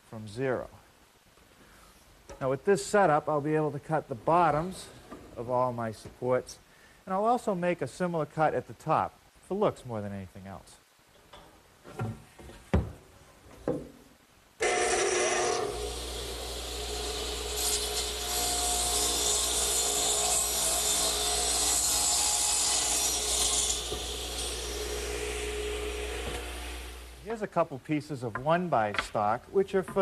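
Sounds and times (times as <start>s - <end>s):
radial arm saw running: 14.6s - 21.9s
saw blade cutting wood: 14.6s - 27.1s.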